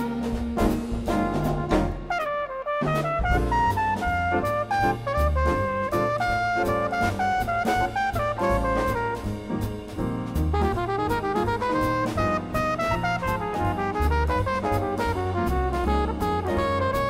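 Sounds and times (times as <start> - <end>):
brass horn solo: 0.0 - 9.7, 10.5 - 17.0
bass: 0.0 - 17.0
drum kit: 0.0 - 17.0.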